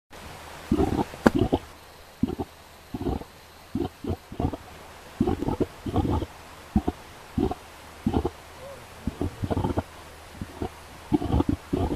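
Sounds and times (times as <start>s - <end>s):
mud pot bubbling: 0.6s - 8.4s, 9.0s - 11.9s.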